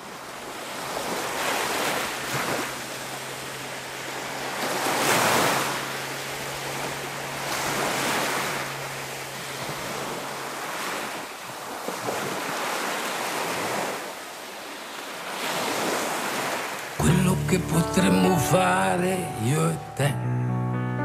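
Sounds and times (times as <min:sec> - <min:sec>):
waves washing onto beach: 0:00.0 - 0:17.0.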